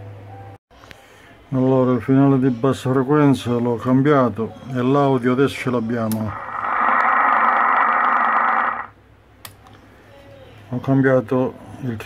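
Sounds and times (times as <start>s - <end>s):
loudspeaker static hiss: 6.2s - 9.0s
click: 9.4s - 9.8s.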